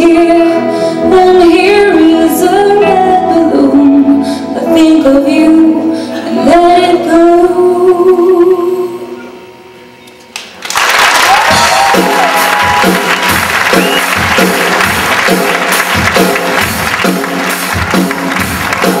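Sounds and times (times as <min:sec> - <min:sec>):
audience applauding and cheering: 0:10.4 - 0:19.0
live band playing: 0:11.2 - 0:19.0.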